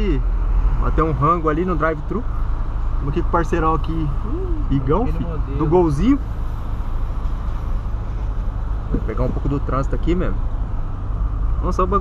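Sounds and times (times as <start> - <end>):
car cabin engine and road rumble: 0.0 - 12.0.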